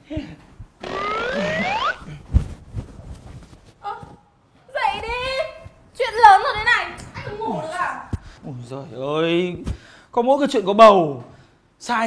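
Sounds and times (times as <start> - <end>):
rising cartoon whistle: 0.8 - 2.1.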